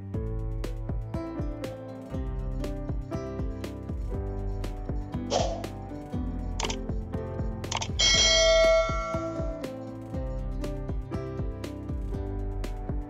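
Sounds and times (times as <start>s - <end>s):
background music with steady beat: 0.0s - 13.0s
bright bell-like chime: 8.0s - 9.6s.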